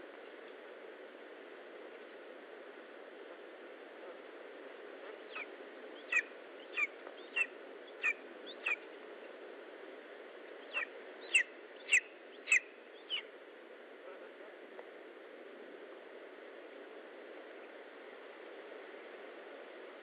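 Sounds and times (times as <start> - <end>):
background hiss: 0.0 - 20.0
eagle chick whistled calls: 5.3 - 8.8, 10.7 - 13.3.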